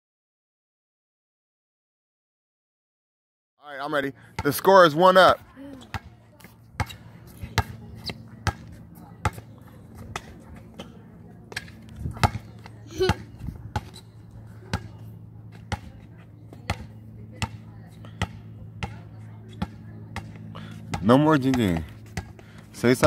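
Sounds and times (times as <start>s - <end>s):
steady low hum: 3.6s - 23.0s
basketball bouncing on hard court: 5.3s - 22.5s.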